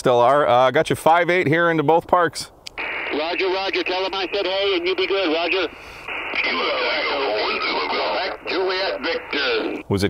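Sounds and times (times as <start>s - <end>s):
static hiss: 2.7s - 9.8s
narrow-band radio speech: 2.8s - 10.0s.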